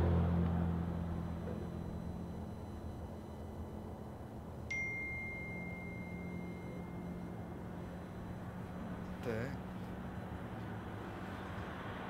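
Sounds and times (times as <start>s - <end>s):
high electronic tone: 0.0s - 10.7s
low rumble of traffic: 0.0s - 12.0s.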